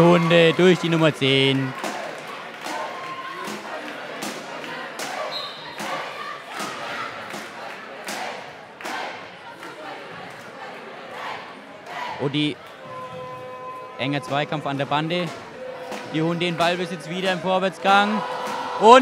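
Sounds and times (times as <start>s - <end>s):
crowd voices: 0.0s - 19.0s
ball thuds echoing in hall: 14.2s - 19.0s.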